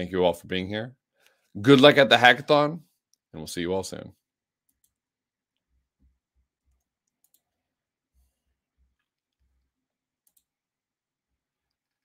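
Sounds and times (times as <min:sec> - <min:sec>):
faint clicks: 0:06.7 - 0:07.5, 0:10.2 - 0:10.5.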